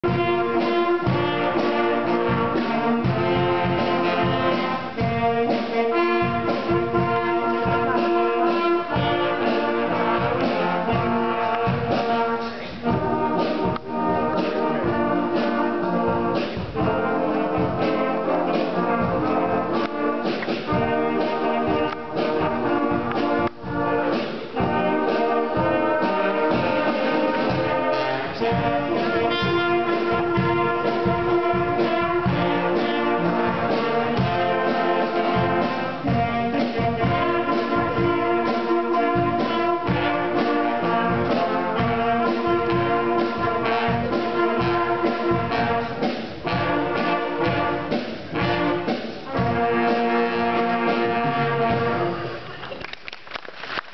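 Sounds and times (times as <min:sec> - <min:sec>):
brass band with drums: 0:00.0 - 0:53.9.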